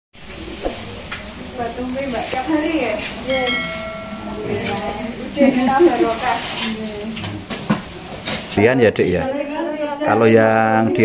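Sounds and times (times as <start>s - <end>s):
hot oil sizzling in a wok: 0.2s - 8.7s.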